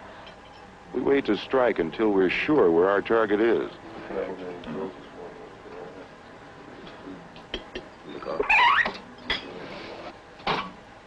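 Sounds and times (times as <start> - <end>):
soft steady background noise: 0.0 - 11.0.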